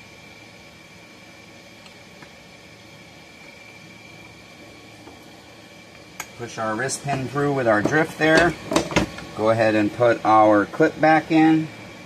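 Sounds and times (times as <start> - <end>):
air compressor humming and hissing: 0.0 - 12.0.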